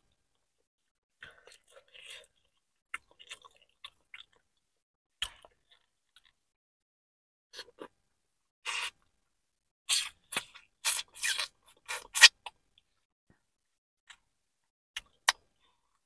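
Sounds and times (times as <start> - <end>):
wet biting and chewing: 9.9 - 12.6.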